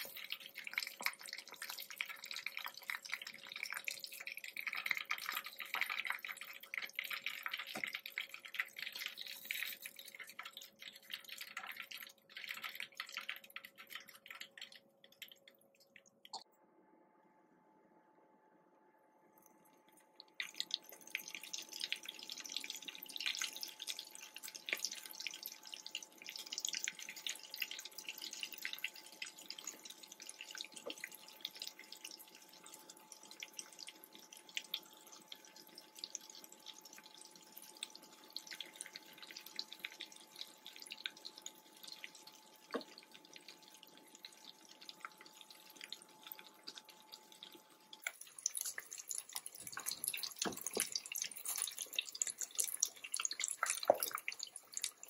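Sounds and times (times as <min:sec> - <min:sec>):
chicken deep-frying in oil: 0:00.0 - 0:16.5, 0:19.5 - 0:55.0.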